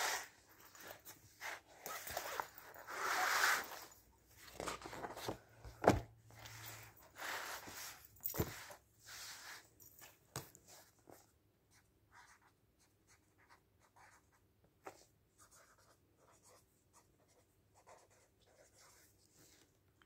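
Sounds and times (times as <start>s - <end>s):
pen scratching on paper: 15.4s - 19.1s.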